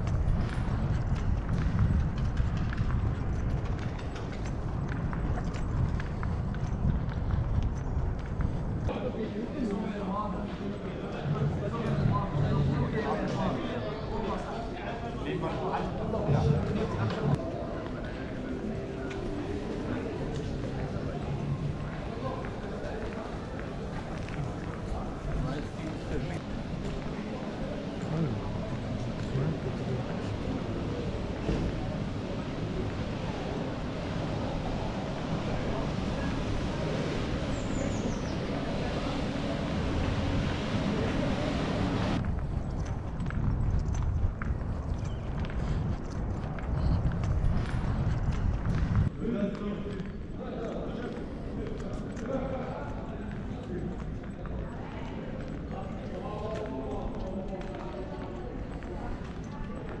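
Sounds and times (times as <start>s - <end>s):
wind rumble on microphone: 0.0s - 9.0s, 18.4s - 49.2s
indistinct voices: 8.9s - 42.2s.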